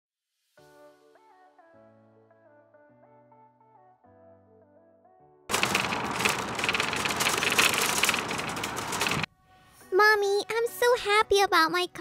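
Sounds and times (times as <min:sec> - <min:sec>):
shopping cart rattling on asphalt: 0:05.5 - 0:09.3.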